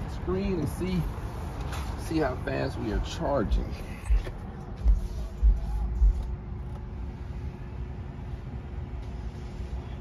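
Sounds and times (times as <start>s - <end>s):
steady low hum: 2.7s - 10.0s.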